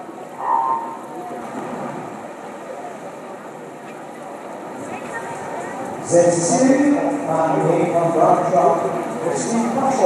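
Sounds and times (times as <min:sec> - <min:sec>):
echoing murmur of spectators: 0:00.0 - 0:10.0.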